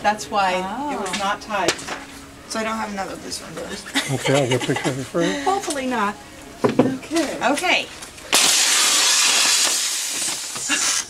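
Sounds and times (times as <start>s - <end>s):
gas hissing into life jacket: 8.3s - 11.0s.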